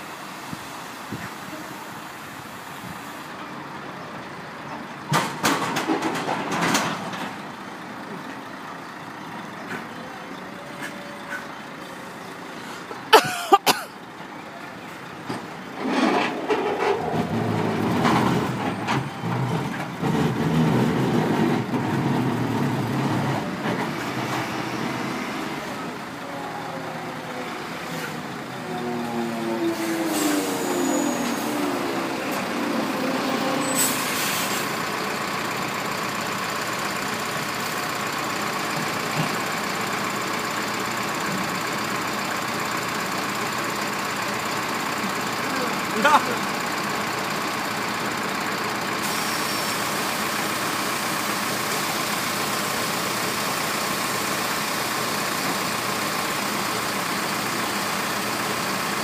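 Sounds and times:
truck diesel engine running: 0:05.8 - 0:13.1, 0:13.7 - 0:59.0
air brake hiss: 0:29.7 - 0:31.7, 0:33.6 - 0:34.8, 0:49.0 - 0:50.1.

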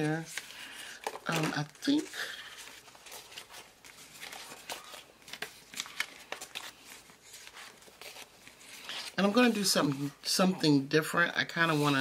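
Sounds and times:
paper rustles: 0:00.0 - 0:10.3, 0:11.5 - 0:12.0.

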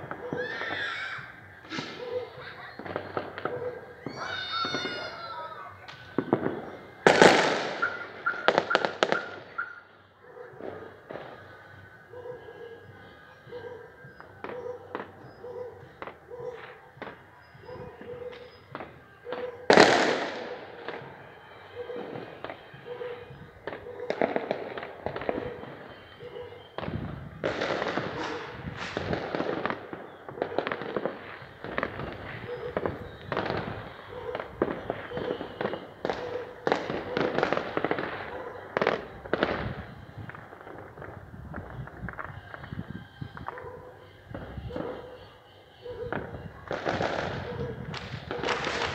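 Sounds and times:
fireworks bangs and pops: 0:00.0 - 0:09.8, 0:14.0 - 0:21.3, 0:21.9 - 0:43.7, 0:46.1 - 0:48.9.

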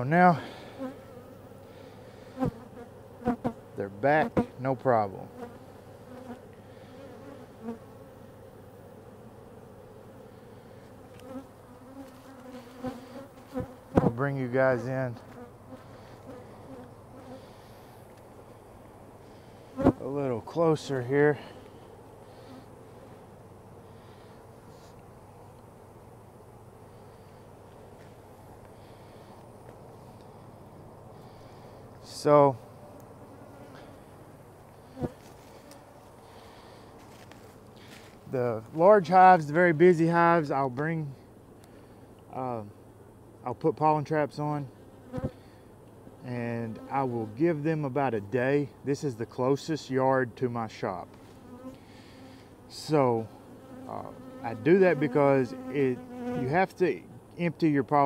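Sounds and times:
bees buzzing: 0:00.0 - 0:40.6, 0:44.3 - 0:47.8, 0:50.5 - 0:57.0.

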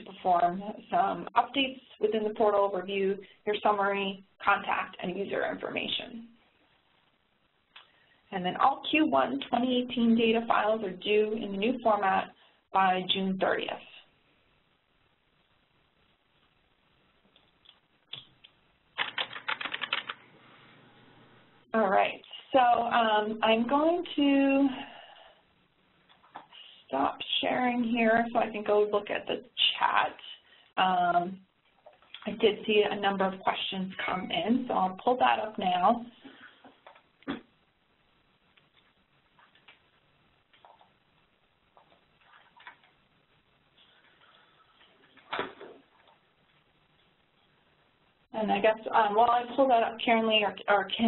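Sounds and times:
computer keyboard typing: 0:19.0 - 0:20.2.

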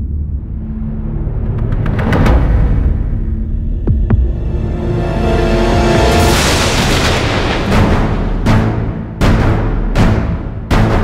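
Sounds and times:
rising swell: 0:03.4 - 0:07.8.

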